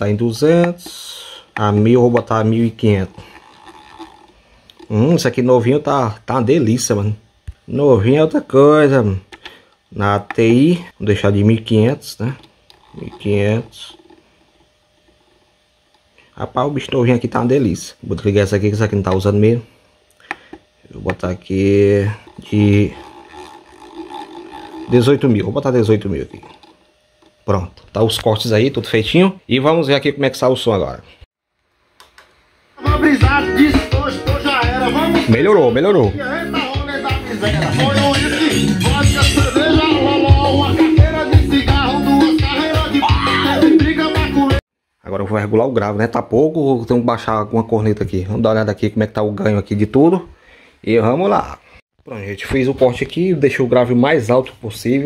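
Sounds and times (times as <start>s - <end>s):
man speaking: 0.0s - 3.2s, 4.8s - 9.3s, 9.9s - 14.1s, 16.4s - 19.7s, 20.9s - 23.1s, 24.9s - 26.6s, 27.4s - 31.2s, 34.6s - 40.4s, 45.1s - 55.0s
loud music with strong bass: 32.8s - 35.3s, 36.1s - 44.6s.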